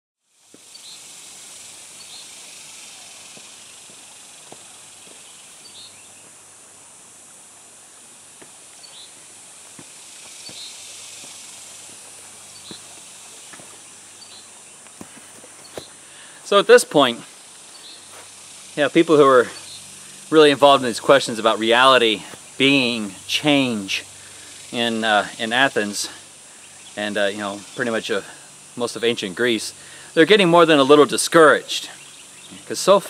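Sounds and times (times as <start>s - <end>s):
steady high-pitched hiss: 0.2s - 33.0s
footsteps on dirt trail: 3.2s - 18.4s, 22.2s - 23.2s.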